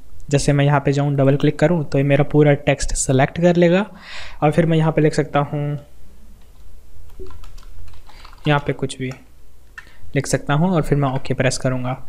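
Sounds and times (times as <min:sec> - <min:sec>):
typing on a keyboard: 0:07.1 - 0:09.2.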